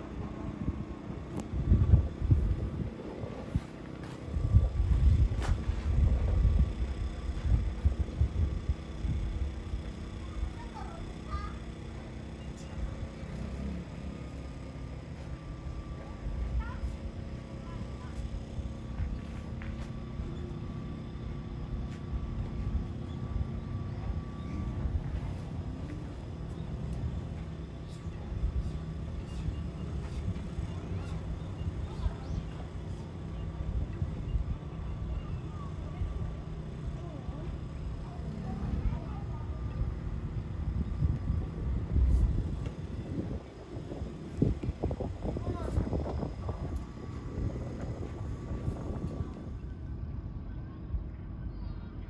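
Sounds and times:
faint hum tones: 0:00.0 - 0:52.0
low outdoor rumble: 0:00.0 - 0:52.0
wind buffeting microphone: 0:00.0 - 0:52.0.

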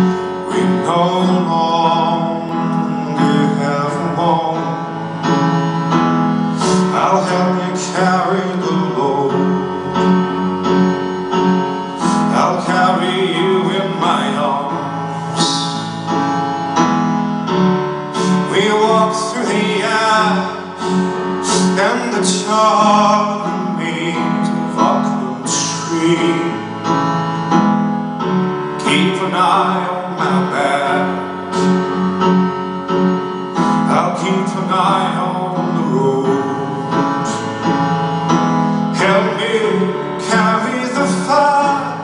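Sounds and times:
live band playing slow song: 0:00.0 - 0:42.0
piano: 0:00.0 - 0:42.0.

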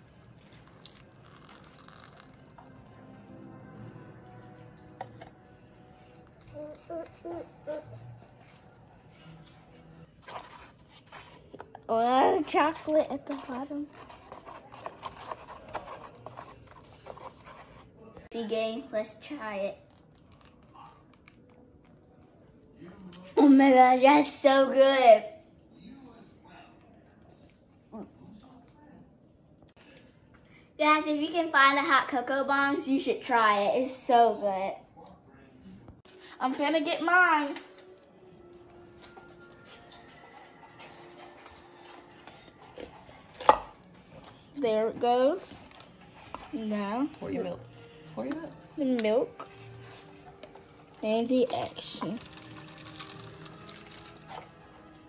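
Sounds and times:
plastic spoon stirring in foam cup: 0:00.0 - 0:18.3, 0:38.6 - 0:55.0.

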